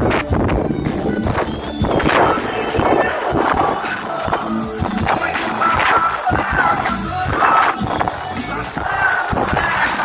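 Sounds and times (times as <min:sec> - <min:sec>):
live band over loudspeakers: 0:00.0 - 0:10.0.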